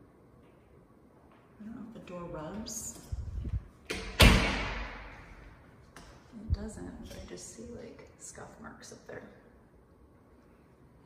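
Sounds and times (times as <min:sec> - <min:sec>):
door closing with thump: 0:03.9 - 0:05.1.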